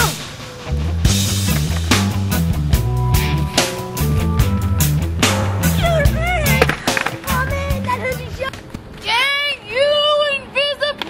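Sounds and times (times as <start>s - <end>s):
rock music: 0.0s - 8.5s
person yelling high cries: 5.8s - 6.6s
skateboards rolling and clattering: 6.5s - 9.1s.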